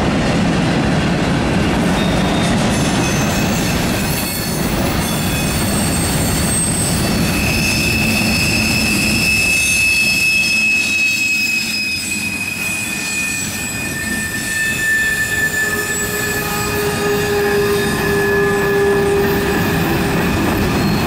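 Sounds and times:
train wheels rumbling on rails: 0:00.0 - 0:21.0
wheel flanges squealing: 0:01.9 - 0:21.0.

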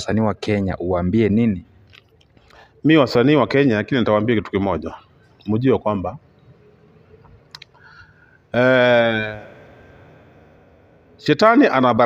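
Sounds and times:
man speaking: 0:00.0 - 0:01.7, 0:02.8 - 0:06.2, 0:08.5 - 0:09.7, 0:11.1 - 0:12.0.

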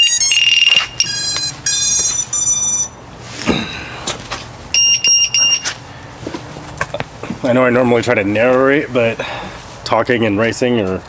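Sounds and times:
held electronic tone: 0:00.0 - 0:04.0, 0:04.7 - 0:05.8
electronic beeps: 0:04.8 - 0:05.7.

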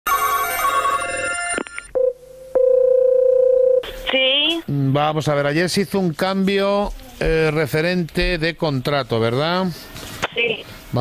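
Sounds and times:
telephone ringback tone: 0:00.1 - 0:03.8
telephone ringing trill: 0:00.1 - 0:03.8.

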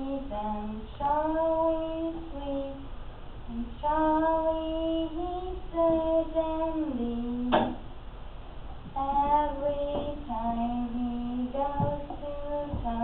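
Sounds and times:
woman singing unaccompanied: 0:00.0 - 0:02.9, 0:03.5 - 0:07.8, 0:08.9 - 0:13.0.

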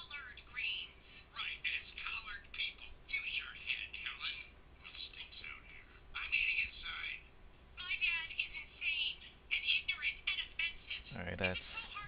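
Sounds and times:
tinny cartoon dialogue from phone speaker: 0:00.0 - 0:12.0.

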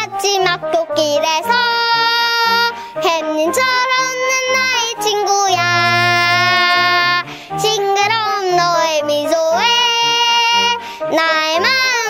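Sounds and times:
child singing: 0:00.0 - 0:12.0
backing track with bass line: 0:05.6 - 0:07.4.

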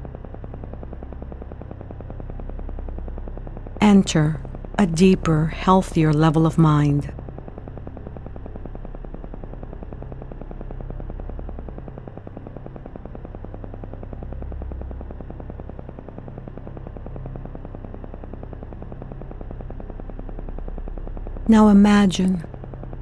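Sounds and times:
low synthesizer drone: 0:00.0 - 0:23.0.

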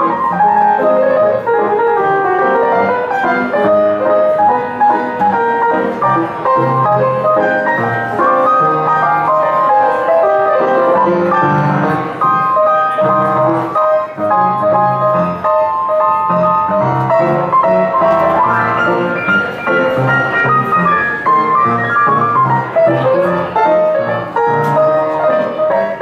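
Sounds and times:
jazz band playing: 0:00.0 - 0:26.0
piano melody: 0:00.0 - 0:26.0.

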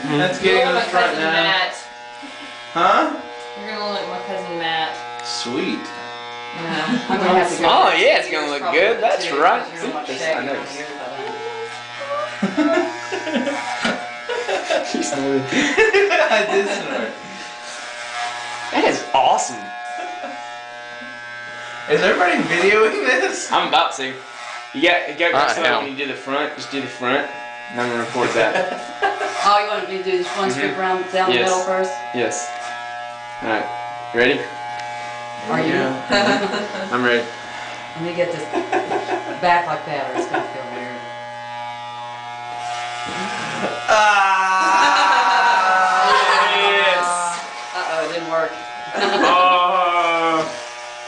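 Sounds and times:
electric hair clippers buzzing: 0:00.0 - 0:51.0.

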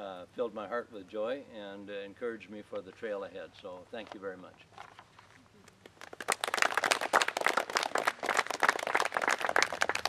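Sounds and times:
audience applause: 0:06.0 - 0:10.0.

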